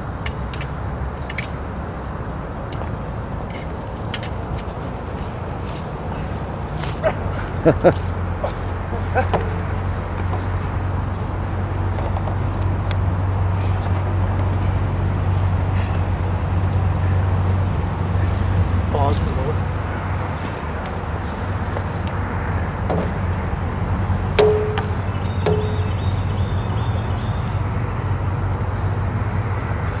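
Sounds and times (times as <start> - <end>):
low outdoor rumble: 0.0 - 30.0.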